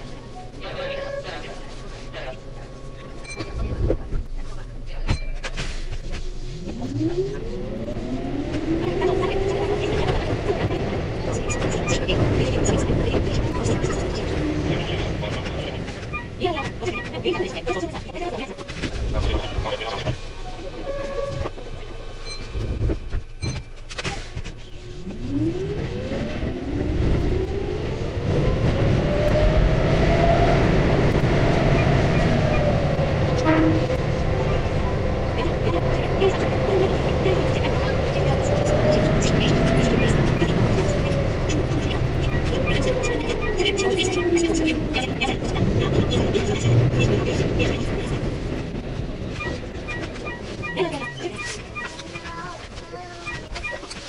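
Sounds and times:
train rumbling: 0.0 - 54.0.

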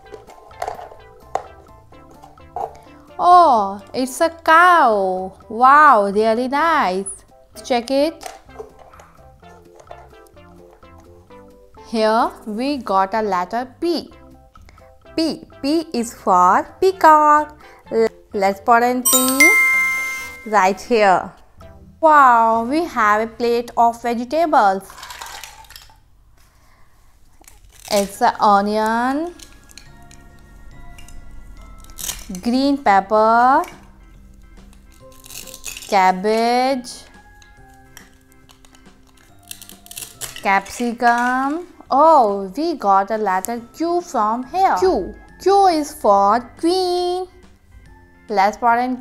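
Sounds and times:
plastic toys clattering: 0.0 - 1.5, 24.8 - 26.0, 38.0 - 41.7
soft background music: 0.0 - 49.0.

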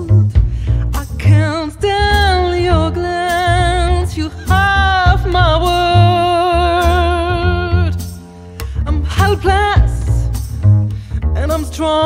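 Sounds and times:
woman singing with vibrato: 0.0 - 8.1, 8.7 - 10.4, 11.3 - 12.0
double bass: 0.0 - 12.0.

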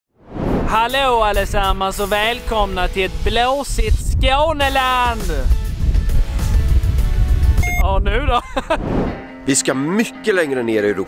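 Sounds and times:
wind buffeting microphone: 0.4 - 9.2
background music with held notes: 4.6 - 11.0.

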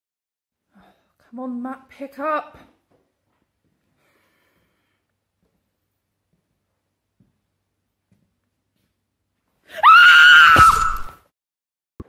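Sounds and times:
woman screaming: 9.7 - 11.2.

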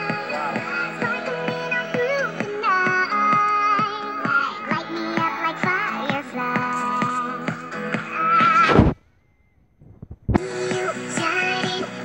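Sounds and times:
high singing voice over music: 0.0 - 8.8, 10.4 - 12.0.

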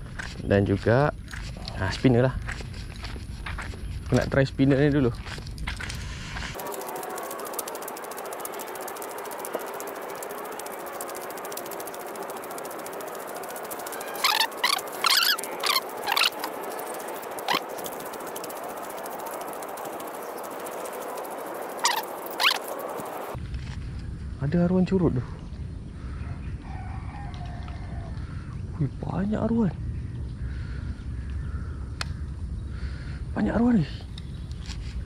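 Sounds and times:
short high squeals: 6.6 - 17.7.

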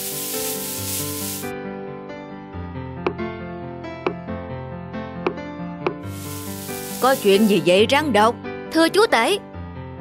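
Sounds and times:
snake slithering over dry leaves: 0.0 - 1.5, 6.0 - 7.8
background music: 0.0 - 10.0.

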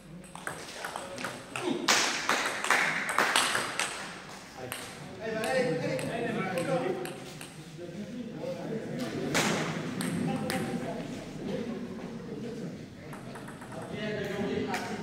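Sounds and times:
table tennis ball clicking: 13.1 - 14.0.

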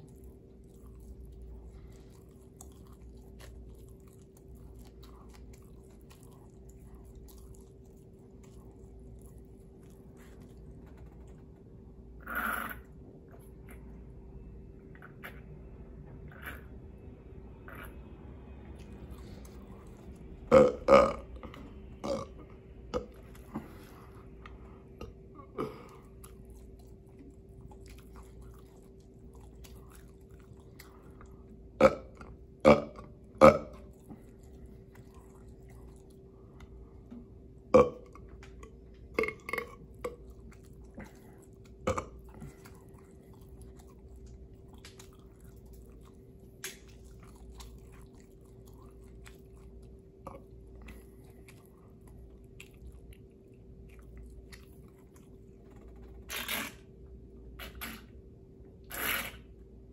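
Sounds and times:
chewing: 0.0 - 11.6, 18.8 - 56.8
faint steady hum: 0.0 - 59.9
man burping loudly: 20.5 - 21.2.

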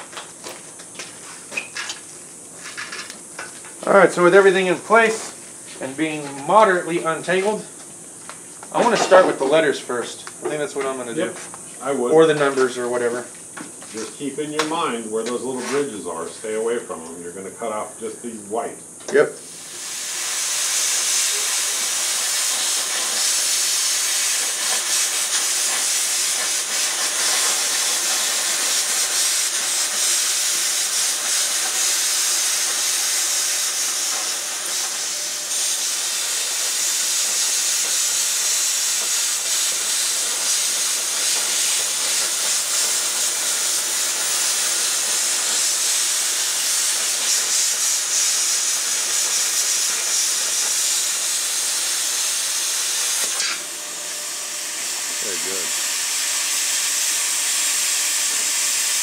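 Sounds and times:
plasma cutter hissing: 3.8 - 7.7, 19.3 - 59.0.

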